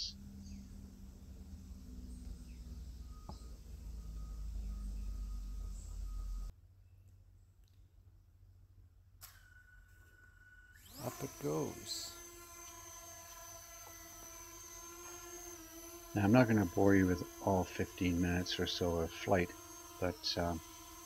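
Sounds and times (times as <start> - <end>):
faint high chirps: 0.0 - 6.5
low outdoor rumble: 0.0 - 6.5.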